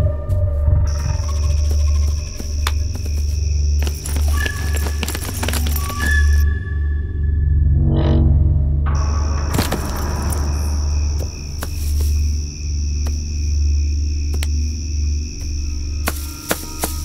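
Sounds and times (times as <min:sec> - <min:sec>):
deep bass drone: 0:06.4 - 0:11.6.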